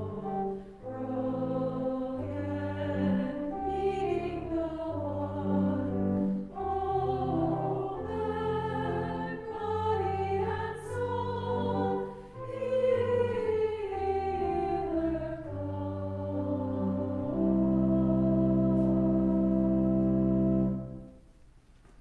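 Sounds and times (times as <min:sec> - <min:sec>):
small choir singing: 0:00.0 - 0:20.6.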